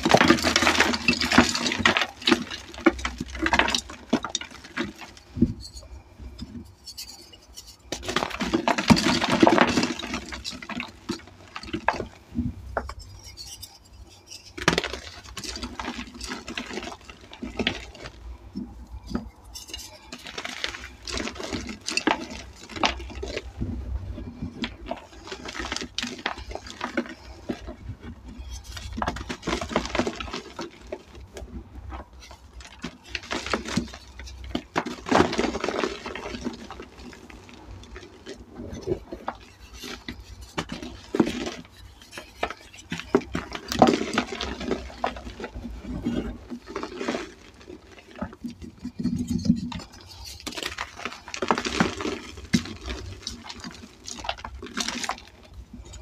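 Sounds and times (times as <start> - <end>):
hands crushing chalk lumps: 0.0 - 56.0.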